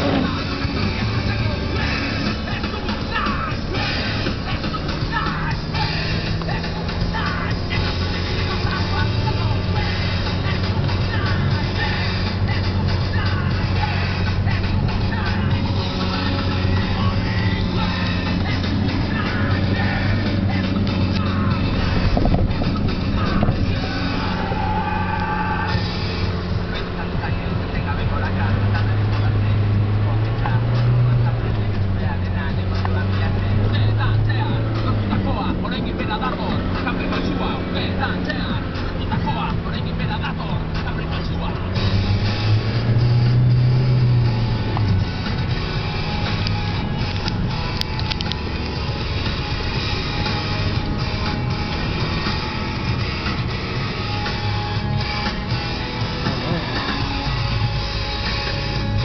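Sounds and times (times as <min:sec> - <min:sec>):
background music: 0:00.0 - 0:59.0
car engine and road noise: 0:00.0 - 0:59.0
indistinct voices: 0:00.0 - 0:59.0.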